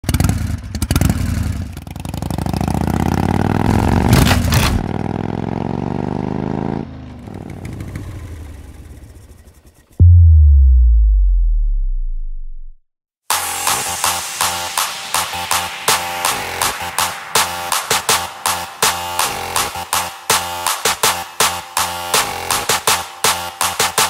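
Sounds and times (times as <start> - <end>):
deep bass boom: 10.0 - 17.7.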